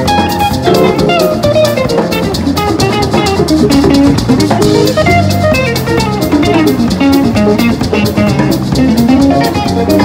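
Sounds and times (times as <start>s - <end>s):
drum kit beat: 0.0s - 10.0s
electric bass: 0.0s - 10.0s
electric guitar: 0.0s - 10.0s.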